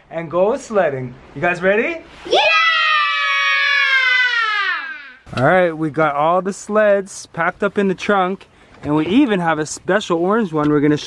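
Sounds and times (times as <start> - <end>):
children shouting yeah: 2.3 - 5.3.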